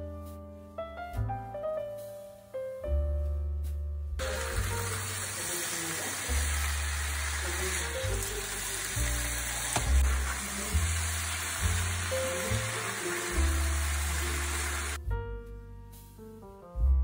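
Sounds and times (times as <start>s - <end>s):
background music with bass: 0.0s - 5.0s, 6.4s - 17.0s
potatoes sizzling in oil: 4.2s - 15.0s.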